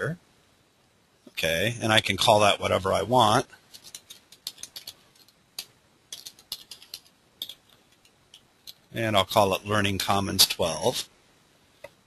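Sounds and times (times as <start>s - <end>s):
typing on computer keyboard: 3.7s - 7.6s.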